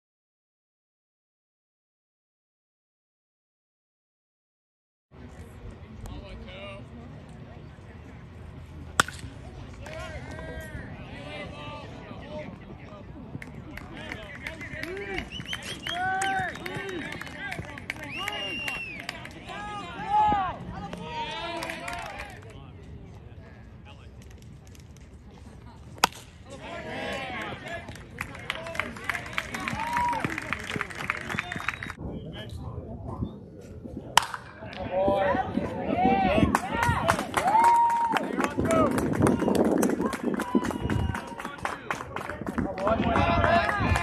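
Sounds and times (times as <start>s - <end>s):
baseball bat hitting ball: 9.0s - 10.1s, 26.0s - 26.5s, 34.2s - 34.9s
spectators shouting and cheering: 14.0s - 22.4s, 26.5s - 31.9s, 34.6s - 41.7s, 42.6s - 44.0s
voices calling out: 26.4s - 32.0s.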